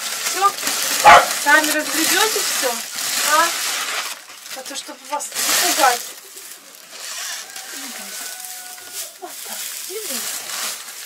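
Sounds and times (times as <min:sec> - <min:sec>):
dry straw rustling: 0:00.0 - 0:11.0.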